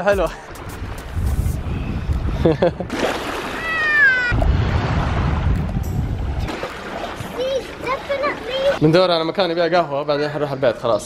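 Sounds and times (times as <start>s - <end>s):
child squealing: 3.6s - 4.4s.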